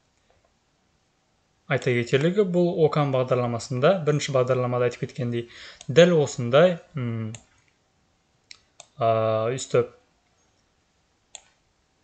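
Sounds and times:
computer mouse clicks: 8.5 - 9.0, 11.3 - 11.6.

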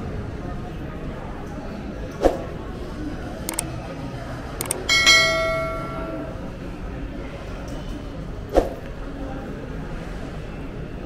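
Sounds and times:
shopping mall background noise: 0.0 - 11.0
light clicks: 3.5 - 3.7, 4.6 - 4.9
bell-like metallic ring: 4.7 - 6.5.

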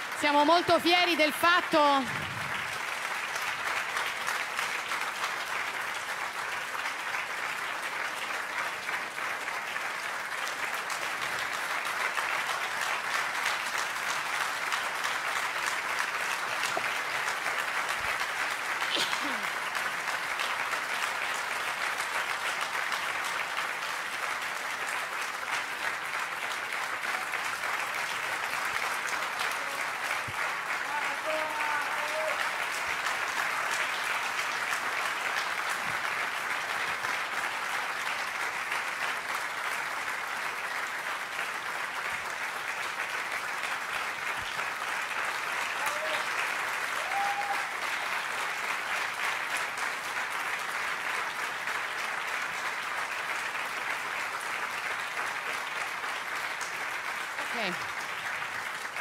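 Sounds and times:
audience applauding: 0.0 - 59.0
calls from crowd: 29.1 - 34.2, 45.6 - 48.1.

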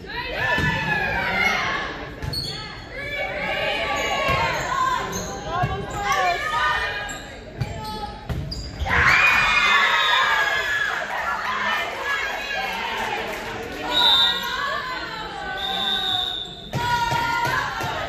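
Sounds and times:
players calling and shouting: 0.0 - 18.0
crowd cheering and shouting: 8.8 - 15.7, 16.7 - 18.0.

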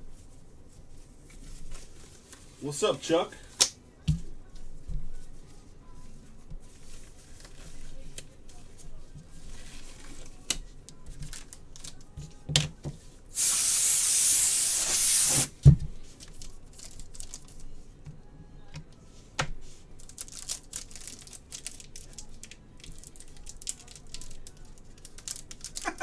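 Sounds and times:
wrapping pulled hiss: 13.3 - 15.6, 20.0 - 26.0
packaging clicks and rustles: 20.0 - 26.0.

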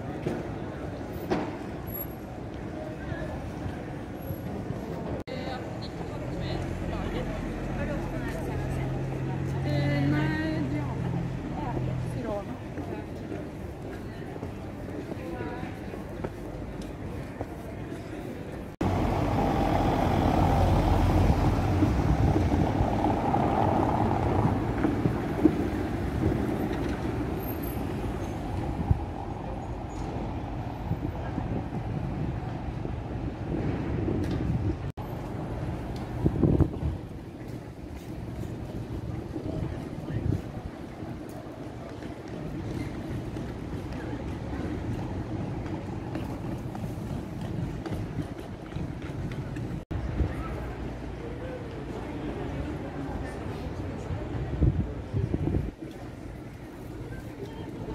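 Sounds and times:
quiet traffic: 0.0 - 57.9
street bustle: 0.0 - 57.9
heavy vehicle rumbling past: 18.8 - 37.0.

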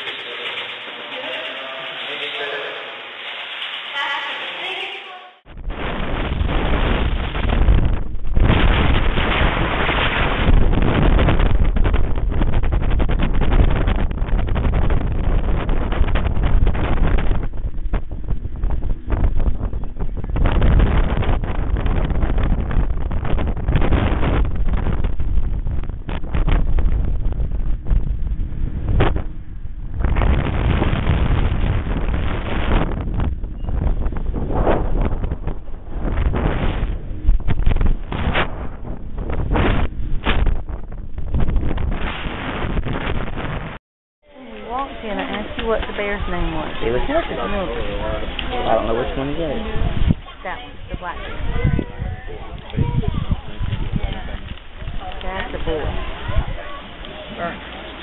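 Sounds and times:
wind buffeting microphone: 5.4 - 43.8, 44.6 - 58.0.

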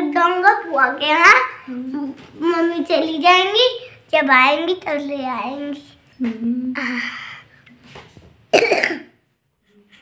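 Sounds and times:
boy coughing: 8.5 - 9.2.

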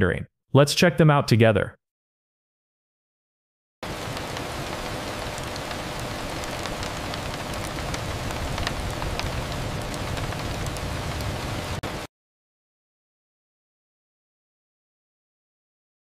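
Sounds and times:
raindrop ticks: 3.8 - 11.4
steady rain falling: 3.8 - 12.1.

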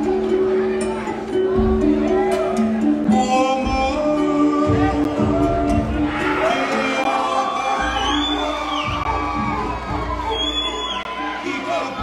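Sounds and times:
walkout music: 0.0 - 12.0
crowd cheering: 5.0 - 12.0
high drawn-out shout: 5.3 - 12.0.

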